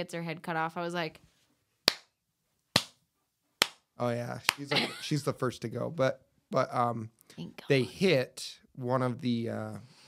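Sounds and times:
hands clapping: 0:01.9 - 0:02.1, 0:02.8 - 0:03.0, 0:03.6 - 0:04.8.

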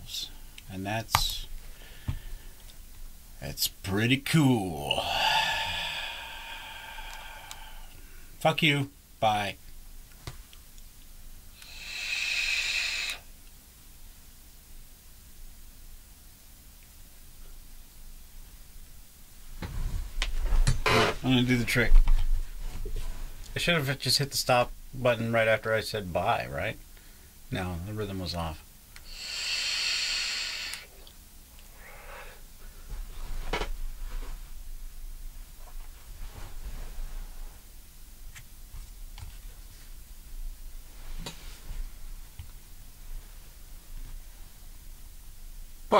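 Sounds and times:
breathy exhale: 0:05.0 - 0:08.3, 0:11.6 - 0:13.3, 0:29.0 - 0:31.0, 0:31.7 - 0:32.5
vape draw hiss: 0:11.5 - 0:13.4, 0:29.0 - 0:31.0.

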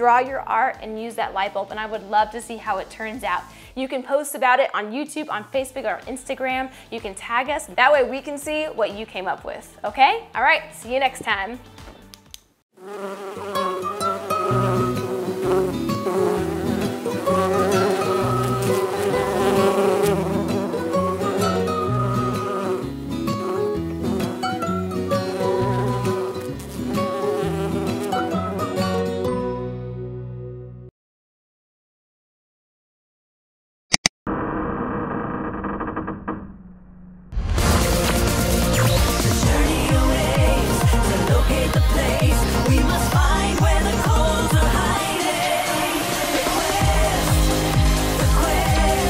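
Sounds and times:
background music: 0:00.0 - 0:12.5, 0:13.3 - 0:30.9, 0:37.4 - 0:49.0
cartoon bee buzzing: 0:12.8 - 0:29.2, 0:37.6 - 0:49.0
stepping bass line: 0:37.5 - 0:45.0, 0:46.6 - 0:49.0.

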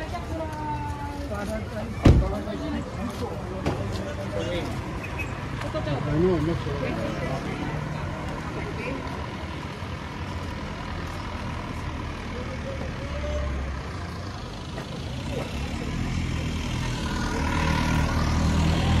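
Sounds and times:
vehicle engine running: 0:05.5 - 0:19.0.

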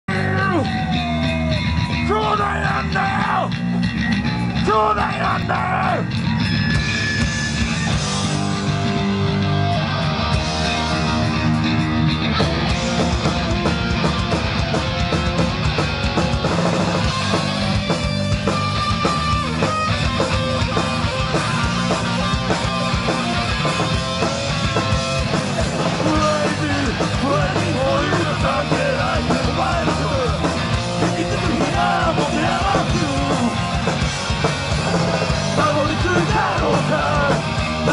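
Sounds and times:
live punk band playing: 0:00.1 - 0:37.9
vocalist singing: 0:25.8 - 0:33.8, 0:35.4 - 0:37.9.

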